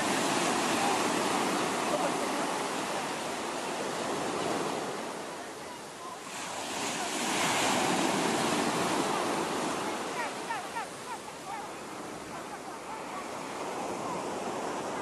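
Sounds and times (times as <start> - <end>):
sea surf breaking on sand: 0.0 - 15.0.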